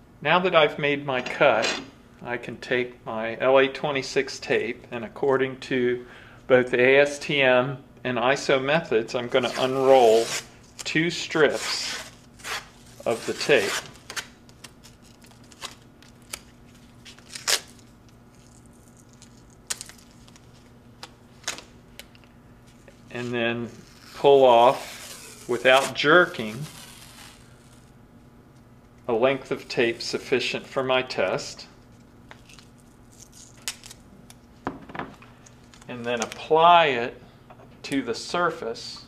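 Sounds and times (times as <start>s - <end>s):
tape unrolling in short rips: 9.4s - 27.9s, 31.9s - 34.1s.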